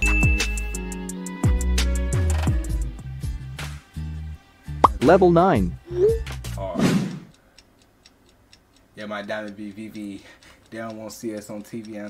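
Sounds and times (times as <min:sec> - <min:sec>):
countdown clock ticking: 0:07.2 - 0:12.0.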